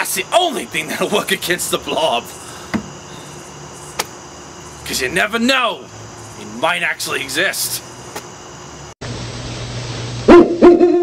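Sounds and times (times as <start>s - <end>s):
owl hooting: 2.0s - 4.0s.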